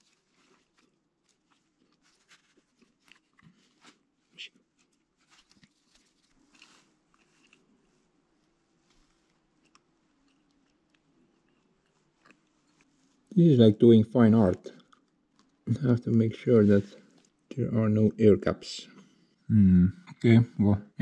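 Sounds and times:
faint clicks and rubs: 0.0 - 13.3, 14.4 - 15.7, 16.7 - 17.5.

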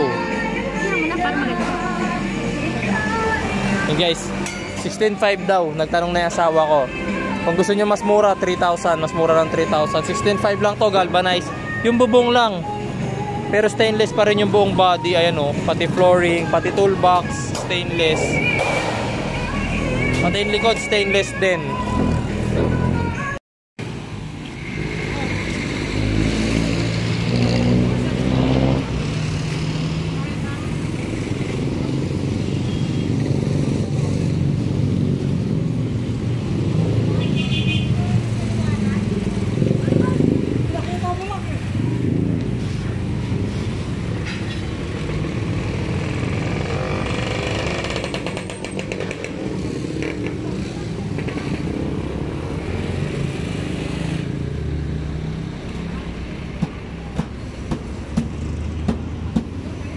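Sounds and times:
people talking: 20.2 - 21.8.

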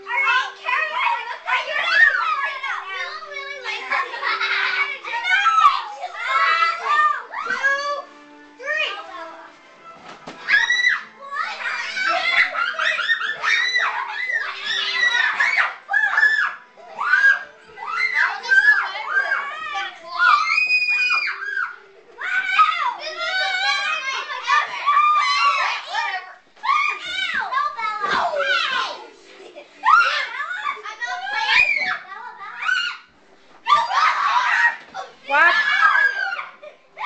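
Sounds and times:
children shouting and squealing: 0.0 - 9.4, 10.2 - 37.0.

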